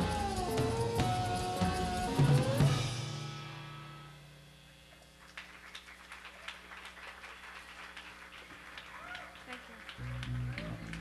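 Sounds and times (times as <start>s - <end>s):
audience clapping: 4.9s - 11.0s.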